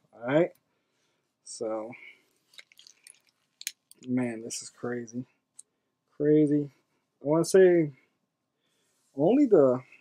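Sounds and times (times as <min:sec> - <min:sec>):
foil wrappers crinkling: 0:02.5 - 0:03.3.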